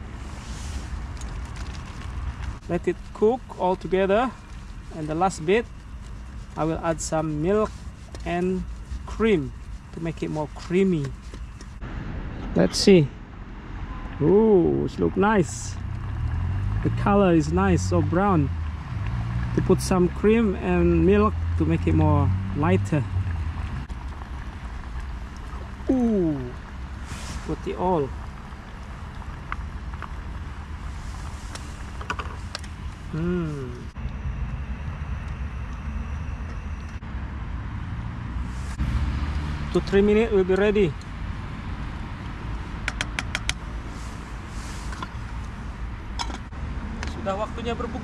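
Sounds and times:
low rumble of road traffic: 0.0 - 48.0
sharp clicks: 42.8 - 43.6.

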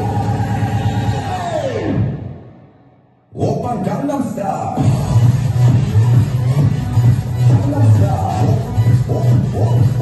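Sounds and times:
dance music with steady beat: 0.0 - 2.5, 3.4 - 10.0.

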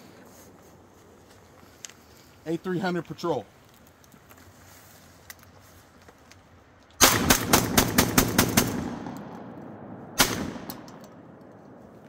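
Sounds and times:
shotgun shots echoing: 7.0 - 11.5.

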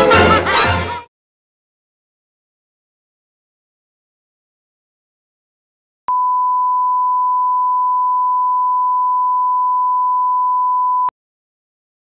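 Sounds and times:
steady test tone beep: 6.1 - 11.1.

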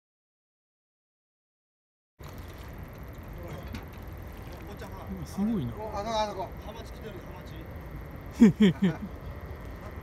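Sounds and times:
low outdoor rumble: 2.2 - 10.0.

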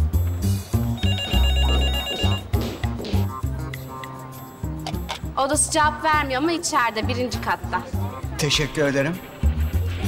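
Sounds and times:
background music with bass line: 0.0 - 5.4
phone ringing with electronic trill: 0.9 - 2.7.

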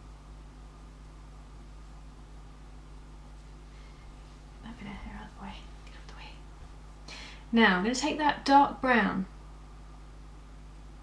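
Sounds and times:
low steady hum: 0.0 - 11.0
woman half-whispering: 4.6 - 6.4.

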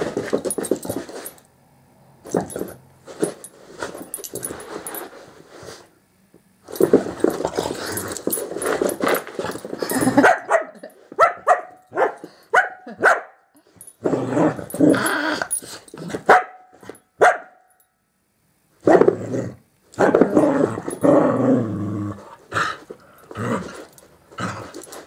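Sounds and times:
small dog barking and growling: 10.0 - 13.4.

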